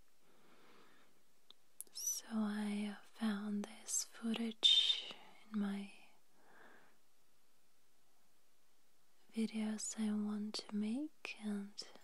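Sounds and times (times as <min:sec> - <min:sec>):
woman whispering: 0:01.8 - 0:06.2, 0:09.3 - 0:12.0.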